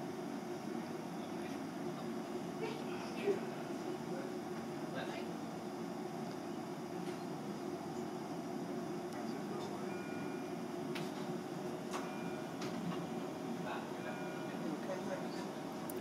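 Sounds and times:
room hum: 0.0 - 16.0
faint electronic beep: 9.9 - 10.4, 14.0 - 14.6.

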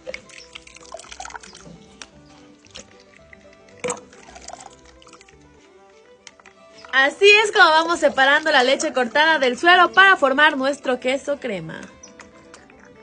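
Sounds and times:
whey dripping and splashing: 0.0 - 10.4, 11.8 - 13.0
soft background music: 0.0 - 13.0.

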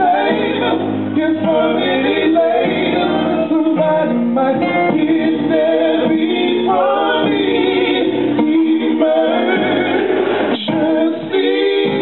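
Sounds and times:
man singing: 0.0 - 10.0
keyboard chords: 0.0 - 12.0.

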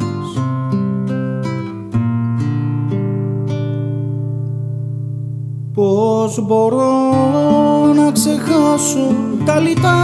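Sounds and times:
classical guitar chords plucked: 0.0 - 10.0.

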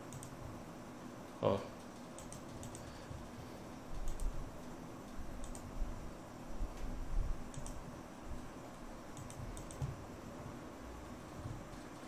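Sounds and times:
computer mouse clicks: 0.0 - 0.4, 1.8 - 3.1, 3.9 - 4.4, 5.0 - 5.7, 6.7 - 7.9, 8.7 - 10.0
faint room hum: 0.0 - 12.0.

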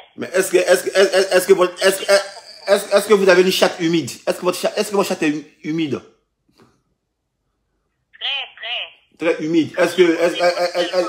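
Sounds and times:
woman speaking over telephone: 8.2 - 9.1.

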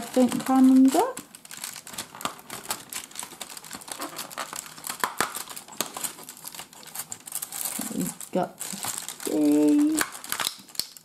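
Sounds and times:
cardboard crinkling and crackling: 0.0 - 11.0.

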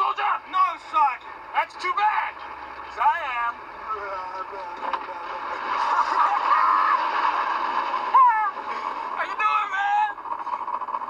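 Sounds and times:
car engine running: 0.0 - 11.0
men laughing: 5.2 - 9.2.

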